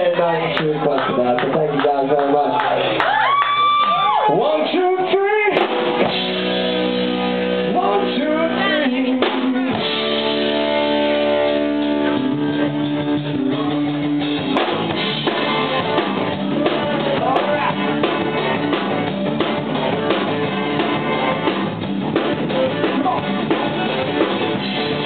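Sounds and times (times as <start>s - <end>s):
live rock band playing: 3.7s - 25.0s
drum kit steady beat: 5.3s - 25.0s.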